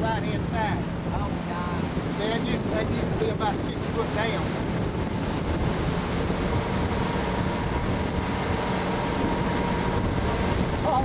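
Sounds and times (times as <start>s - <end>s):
boat motor running: 0.0s - 11.0s
water rushing past hull: 0.0s - 11.0s
wind buffeting microphone: 0.0s - 11.0s.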